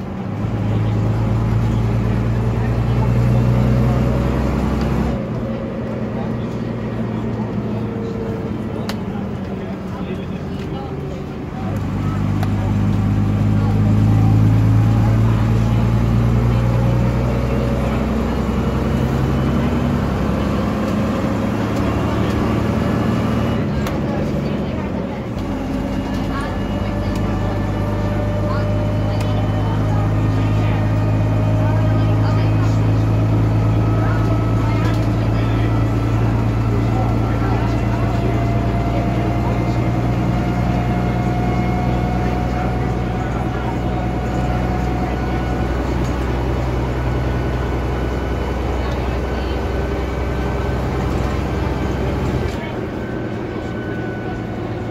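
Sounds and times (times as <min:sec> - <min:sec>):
diesel bus engine: 0:00.0 - 0:54.9
rising engine whine: 0:00.0 - 0:54.9.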